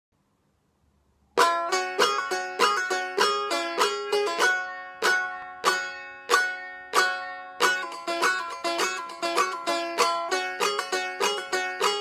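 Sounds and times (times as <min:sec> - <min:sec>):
plucked long-necked lute: 0:01.4 - 0:12.0.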